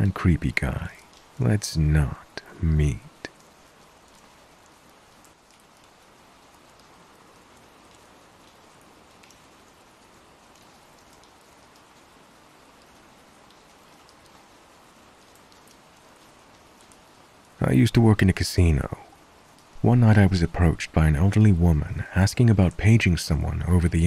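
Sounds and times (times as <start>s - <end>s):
rain hissing: 0.0s - 24.0s.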